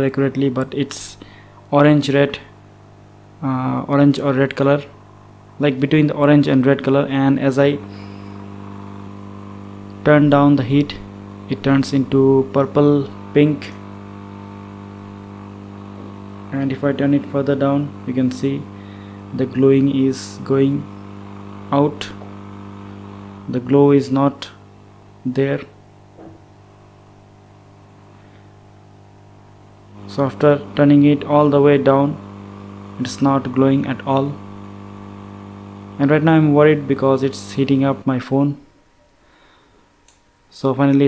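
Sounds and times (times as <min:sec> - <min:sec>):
hot-air blower humming: 0:00.0 - 0:41.0.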